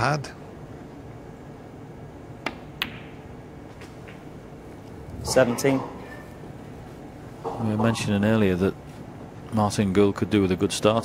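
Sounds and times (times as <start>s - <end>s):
cue tip striking ball: 2.4s - 4.3s.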